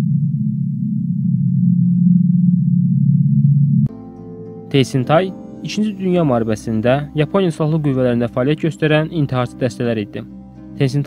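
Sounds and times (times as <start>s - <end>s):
low electronic drone: 0.0s - 9.2s.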